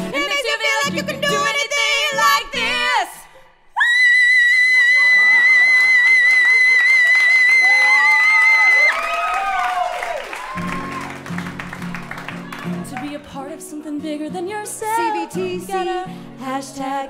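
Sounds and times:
acoustic guitar strumming: 0:10.7 - 0:16.5
woman singing high note: 0:13.0 - 0:16.1.

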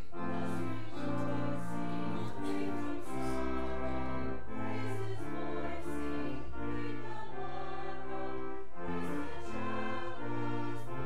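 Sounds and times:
slow hymn music chords: 0:00.0 - 0:11.0.

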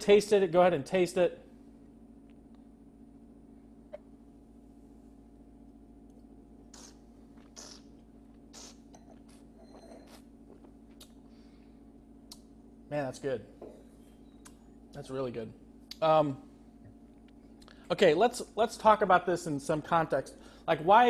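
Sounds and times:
steady low hum: 0:00.0 - 0:21.0
soft sips and slurps: 0:06.7 - 0:11.2.

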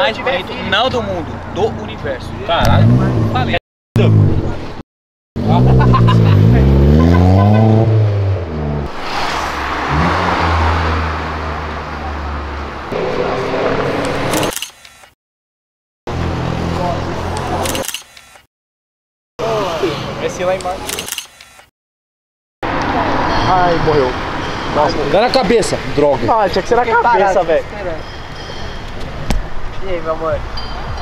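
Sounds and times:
car engine revving: 0:00.7 - 0:04.8, 0:05.4 - 0:14.5
rushing noise: 0:08.8 - 0:14.6.

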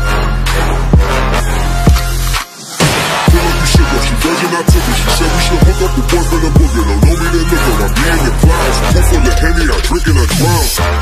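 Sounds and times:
rapping over deep bass beat: 0:03.2 - 0:11.0.

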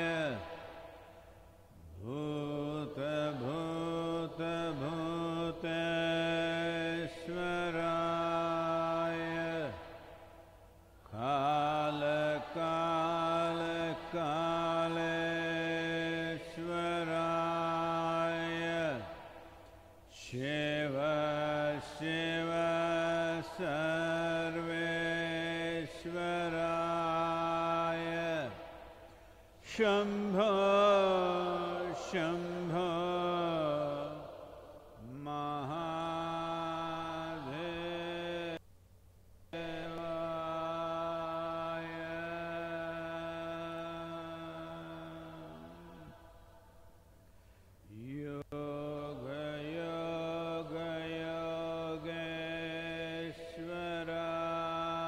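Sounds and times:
man chanting long notes: 0:00.0 - 0:00.6
man chanting in long notes: 0:00.0 - 0:00.8, 0:01.9 - 0:10.0, 0:11.1 - 0:19.2, 0:20.1 - 0:28.6, 0:29.6 - 0:38.6, 0:39.6 - 0:46.6, 0:47.9 - 0:55.0.

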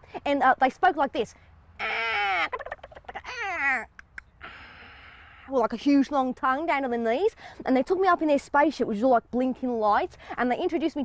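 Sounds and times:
woman making warbling calls: 0:01.8 - 0:04.4.

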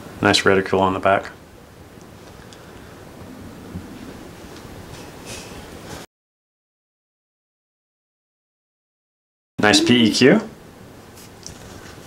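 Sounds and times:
room hiss: 0:00.0 - 0:06.1, 0:09.6 - 0:12.0
soft rustle: 0:11.1 - 0:12.0.

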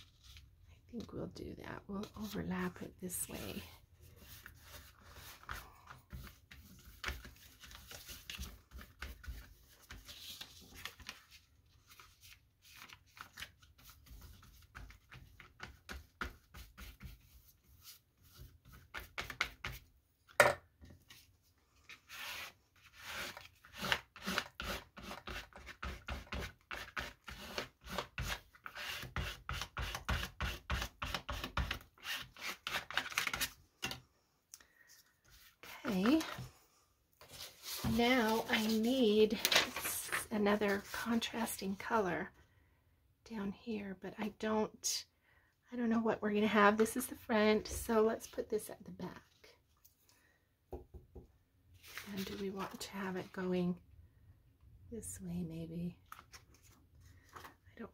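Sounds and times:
hands rubbing paper: 0:37.2 - 0:40.1.

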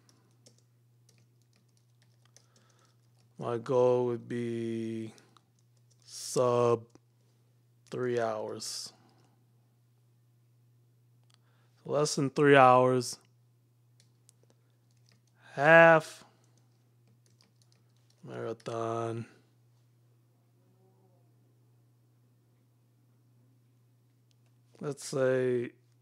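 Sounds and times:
computer keyboard clicks: 0:00.0 - 0:03.3, 0:14.0 - 0:15.4, 0:16.4 - 0:18.7
low steady hum: 0:00.0 - 0:26.0.

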